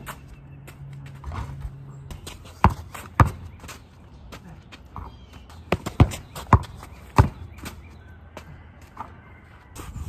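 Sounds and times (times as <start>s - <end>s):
basketball bouncing on dirt: 0.0s - 9.4s.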